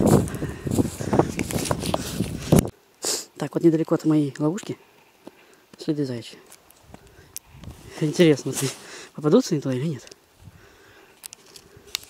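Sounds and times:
footsteps in snow: 0.0 - 2.7, 6.5 - 10.0.

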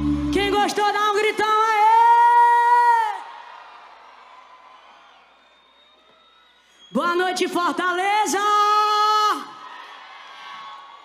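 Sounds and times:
crowd and stage echo: 0.0 - 11.0.

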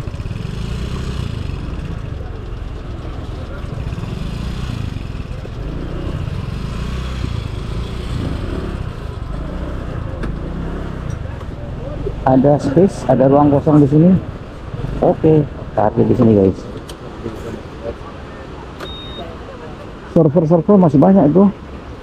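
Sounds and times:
motor scooter low rumble: 0.0 - 17.6.

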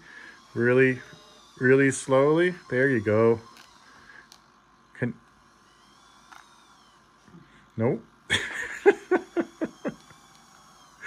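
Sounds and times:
man laughing: 8.3 - 10.1.

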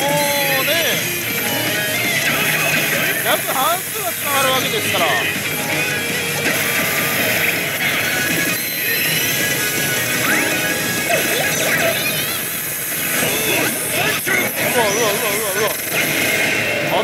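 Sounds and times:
pachinko hall din: 0.0 - 17.0
slot machine game music: 0.0 - 17.0.

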